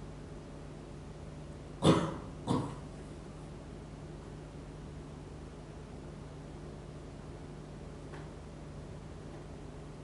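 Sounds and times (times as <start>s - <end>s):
faint room hum: 0.0s - 10.0s
person coughing: 1.8s - 2.9s.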